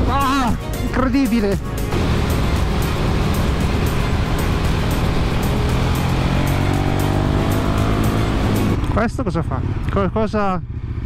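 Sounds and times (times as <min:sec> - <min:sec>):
music with steady beat: 0:00.0 - 0:08.8
motorcycle engine revving: 0:01.9 - 0:11.0.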